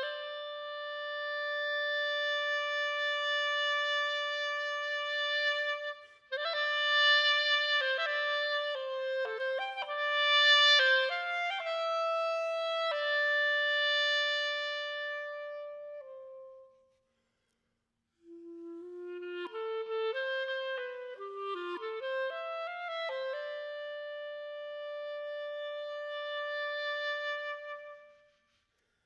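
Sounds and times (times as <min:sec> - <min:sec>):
solo clarinet playing: 0:00.0 - 0:17.0, 0:18.2 - 0:28.4.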